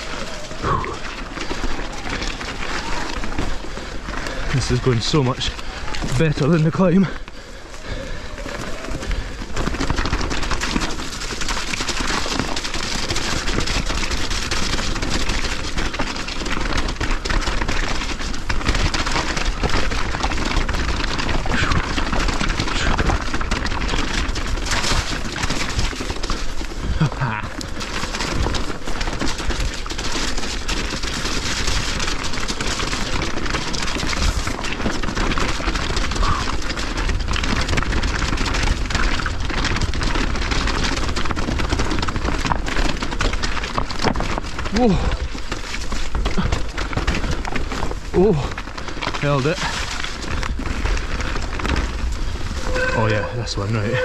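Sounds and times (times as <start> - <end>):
bike rattling: 0.0 - 54.0
bike tyres clattering over rocks: 0.0 - 54.0.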